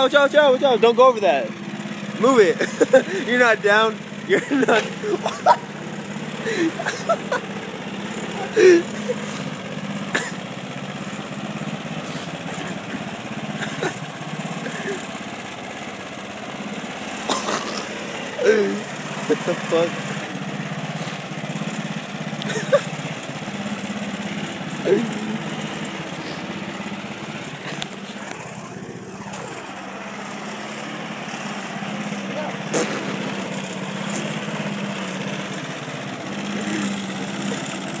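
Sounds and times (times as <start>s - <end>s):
lawn mower engine running: 0.0s - 38.0s.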